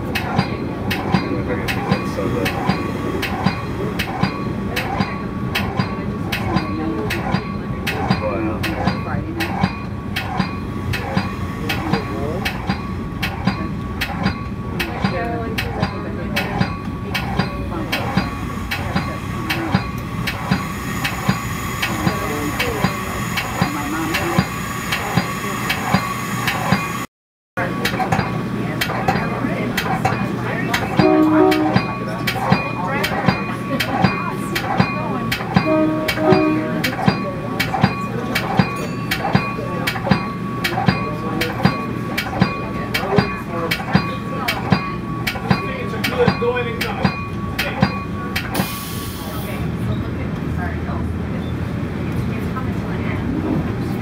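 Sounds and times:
wheels clicking over rails: 0.0s - 35.8s
train running low hum: 0.0s - 54.0s
brief pitched tones: 31.0s - 32.1s, 35.6s - 37.1s.

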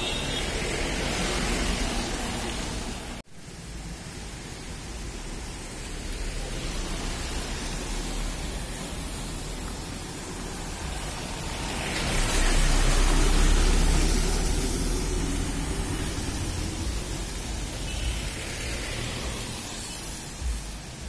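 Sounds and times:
roadside traffic noise: 0.0s - 21.0s.

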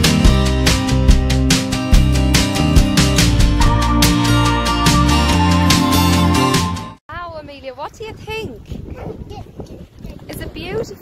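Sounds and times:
wind rumbling on microphone: 7.1s - 11.0s.

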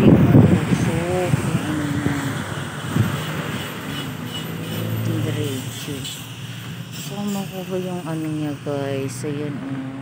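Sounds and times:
engine hum: 0.0s - 10.0s
tyres hissing on wet road: 0.0s - 10.0s.

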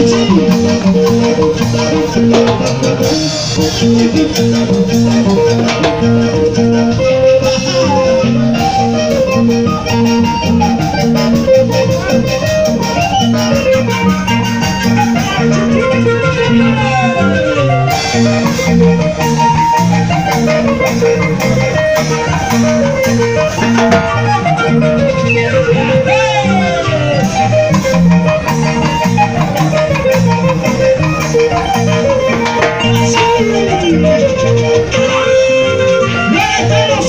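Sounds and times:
electric guitar: 0.0s - 37.0s
electronic keyboard: 0.0s - 37.0s
repeating bass line: 0.0s - 37.0s.

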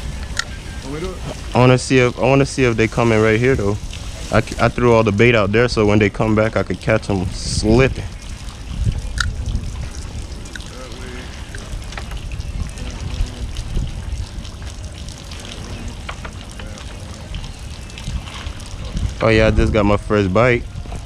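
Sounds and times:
steady low rumble: 0.0s - 21.0s
water splashing around pilings: 0.0s - 21.0s
faint voices: 10.6s - 12.0s, 12.7s - 13.6s, 15.4s - 17.5s.

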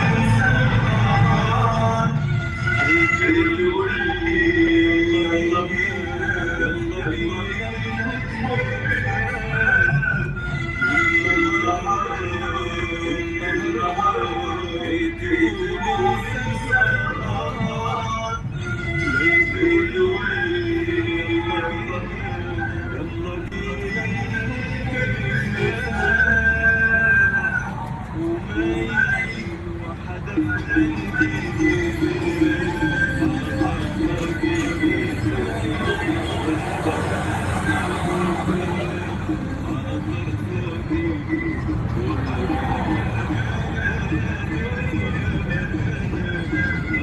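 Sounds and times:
car engine and road noise: 0.0s - 47.0s
song playing on car radio: 0.0s - 47.0s.

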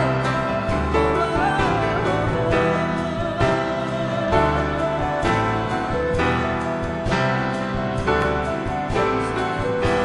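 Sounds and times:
folk-jazz band playing: 0.0s - 10.0s
guitar: 0.0s - 10.0s.

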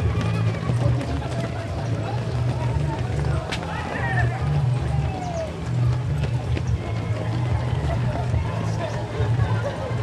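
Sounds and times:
runners' footfalls on asphalt: 0.0s - 10.0s.

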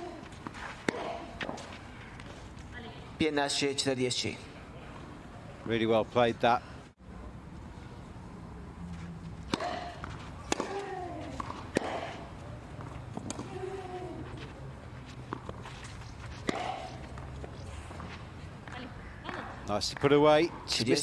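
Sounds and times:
rackets hitting tennis ball: 0.0s - 2.3s, 9.3s - 20.2s.

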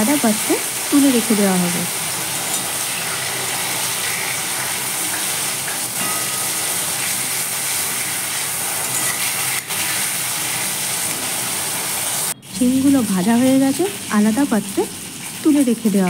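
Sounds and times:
beans sizzling in hot oil: 0.0s - 16.0s.

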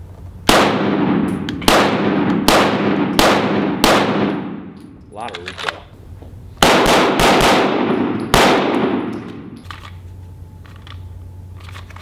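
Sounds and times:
pistol shots echoing: 0.5s - 4.8s, 6.6s - 9.6s.

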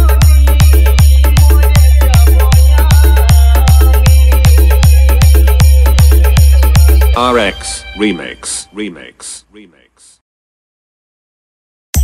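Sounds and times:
dance music with heavy bass kick: 0.0s - 7.4s.

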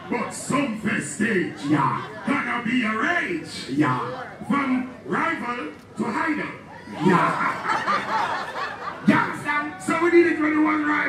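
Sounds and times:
people laughing: 6.8s - 9.9s.

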